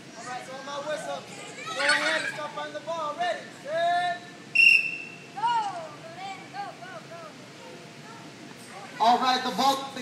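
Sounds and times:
children shouting excitedly: 0.2s - 2.5s
shrill whistle blast: 4.5s - 5.2s.

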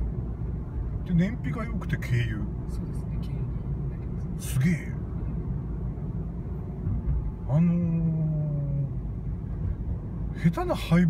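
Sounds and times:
car interior drive noise: 0.0s - 11.0s.

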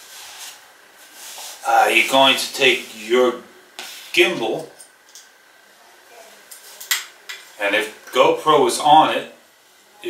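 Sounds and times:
fabric rubbing: 0.0s - 2.0s.

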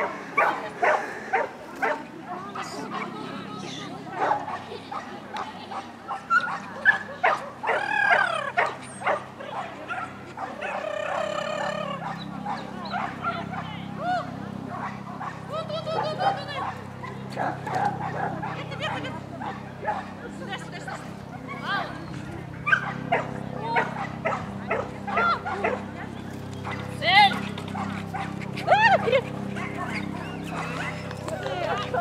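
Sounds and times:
people's voices: 0.0s - 32.0s
small dog barking and yipping: 5.7s - 13.8s.

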